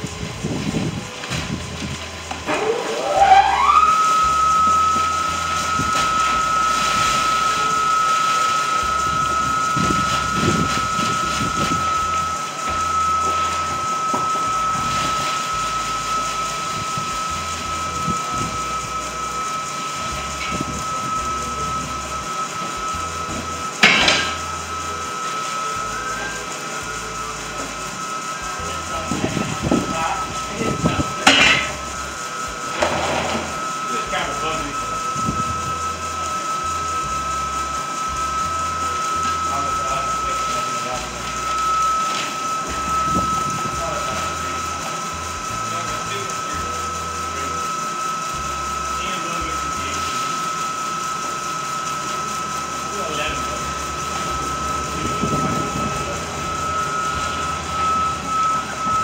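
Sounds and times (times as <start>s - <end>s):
high-pitched motor whine: 0.0s - 59.0s.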